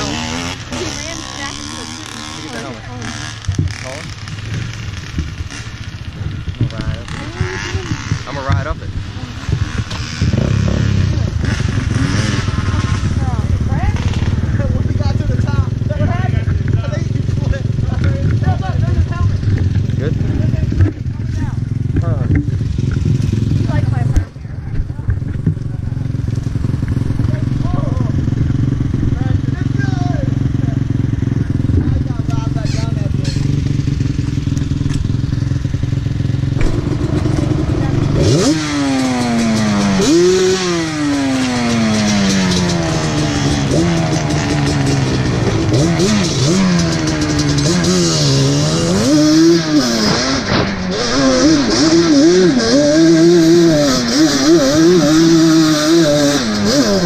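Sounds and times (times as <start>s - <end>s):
quad engine idling and revving: 0.0s - 57.0s.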